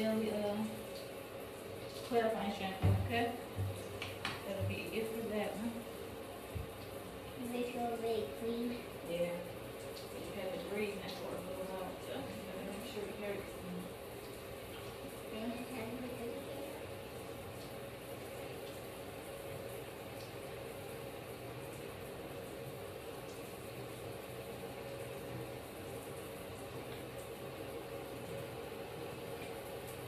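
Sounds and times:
faint steady hum: 0.0s - 30.0s
water running into a bathtub: 0.0s - 30.0s.

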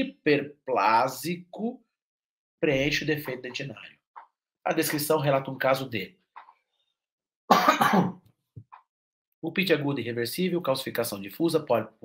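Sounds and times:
man clearing throat: 7.5s - 8.2s.

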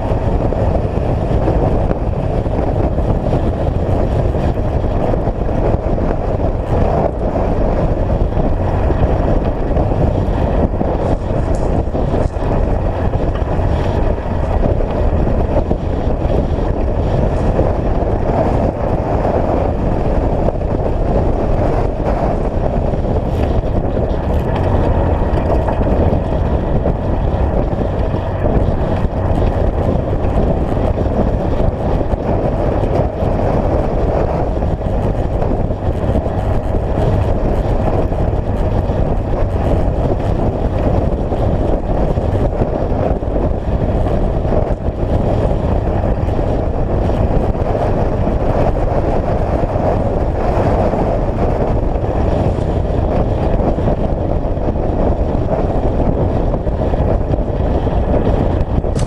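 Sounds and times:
engine drone: 0.0s - 59.0s.

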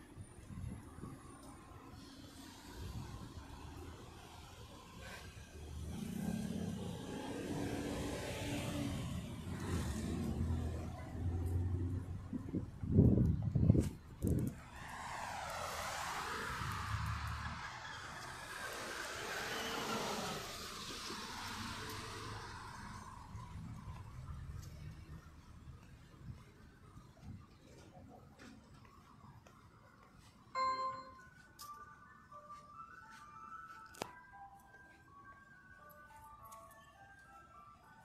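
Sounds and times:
motor vehicle passing: 1.9s - 25.8s.

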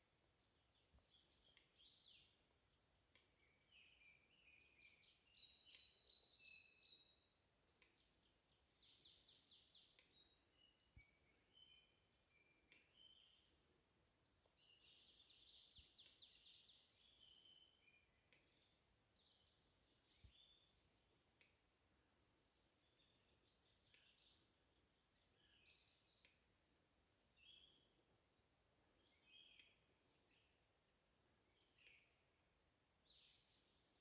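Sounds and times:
songbirds chirping and trilling: 0.0s - 34.0s.

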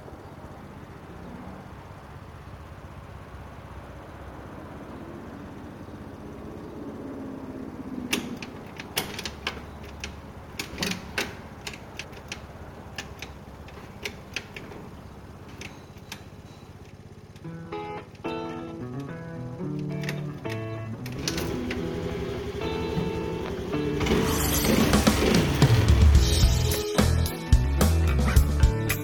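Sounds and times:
steady low hum: 0.0s - 26.4s
sharp clicks and taps of controls: 8.1s - 17.5s.

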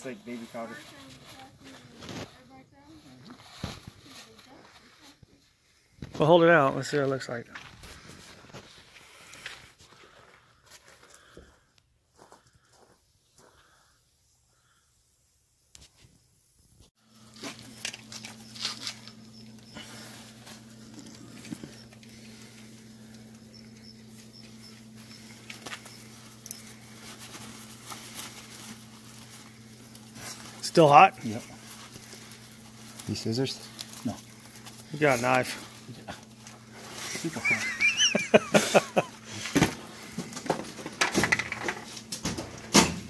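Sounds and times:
low hum: 17.1s - 30.6s.

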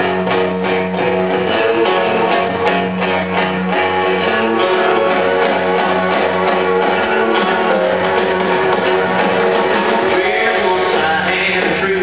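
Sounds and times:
strummed guitar chords: 0.0s - 12.0s.

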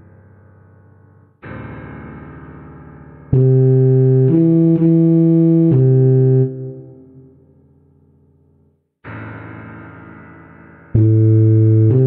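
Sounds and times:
synthetic tuba note: 3.4s - 7.3s, 11.0s - 12.0s.

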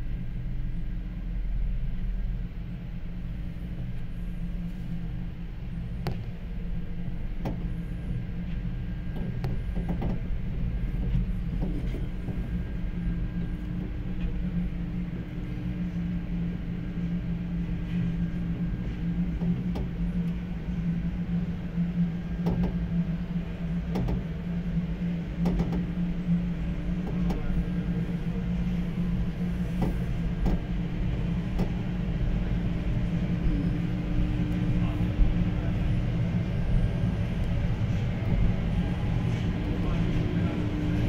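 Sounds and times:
low mechanical hum: 0.0s - 41.0s.

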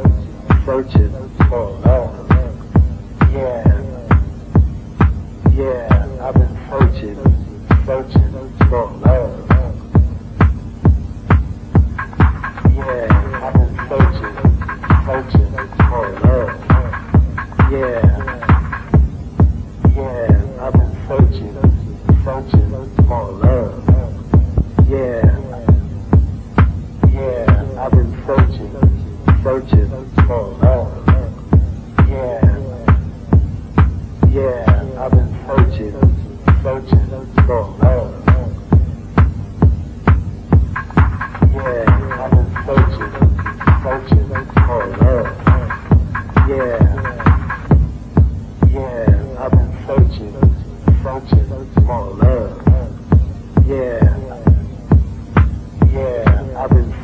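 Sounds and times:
house music kick drum: 0.0s - 57.0s.

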